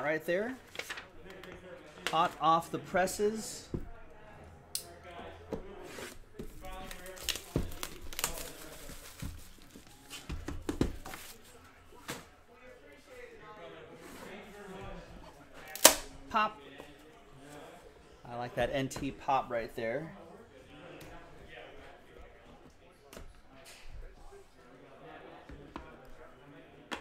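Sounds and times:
plastic wrap tearing and crumpling: 6.8 - 9.6.

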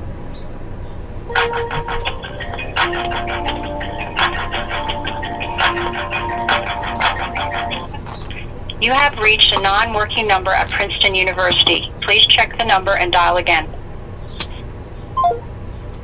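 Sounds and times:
hold music through telephone speaker: 1.3 - 13.3.

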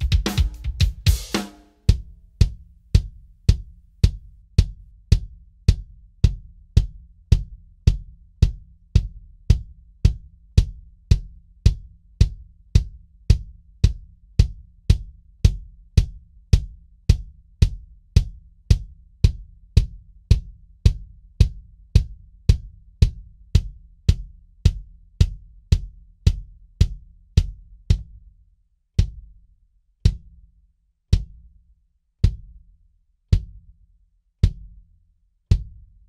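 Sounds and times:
bass drum strokes: 0.0 - 10.8
drum kit groove: 0.0 - 28.2, 31.1 - 31.5, 33.3 - 33.7.

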